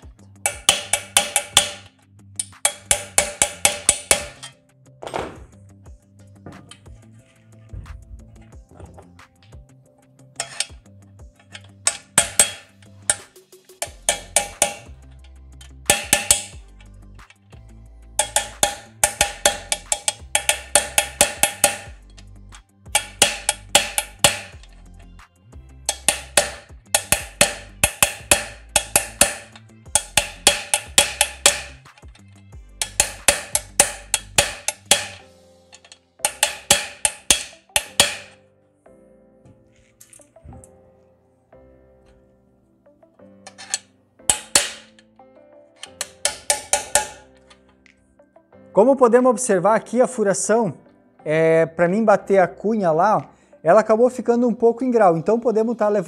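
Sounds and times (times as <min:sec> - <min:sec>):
hammer striking metal wedge: 0:00.0 - 0:05.6, 0:06.5 - 0:07.0, 0:10.4 - 0:10.8, 0:11.4 - 0:17.4, 0:18.2 - 0:22.3, 0:22.9 - 0:25.2, 0:25.9 - 0:32.2, 0:32.8 - 0:38.4, 0:43.5 - 0:45.1, 0:45.8 - 0:47.7.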